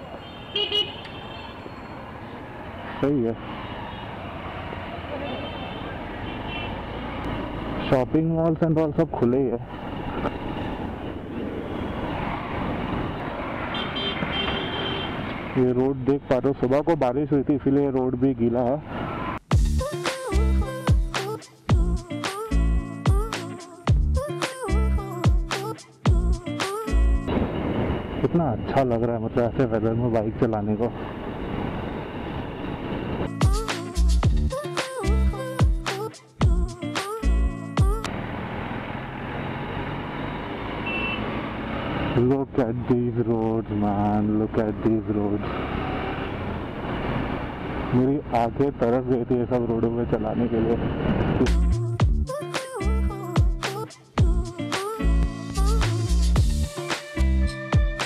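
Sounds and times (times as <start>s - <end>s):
light street traffic: 0.0s - 19.6s, 26.7s - 34.5s, 37.0s - 52.3s
wind and road noise: 0.0s - 19.7s, 27.0s - 34.5s, 37.3s - 52.2s
background music with a beat: 19.5s - 27.3s, 33.3s - 38.1s, 51.5s - 58.0s
short high beep: 40.9s - 41.2s.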